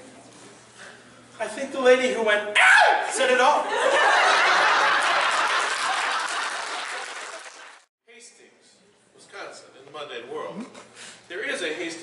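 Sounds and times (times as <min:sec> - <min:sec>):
audience laughing: 0:03.7 - 0:07.4
audience applauding: 0:04.5 - 0:07.9.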